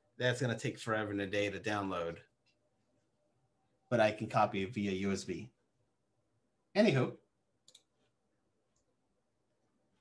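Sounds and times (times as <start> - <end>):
computer mouse clicks: 7.6 - 8.9.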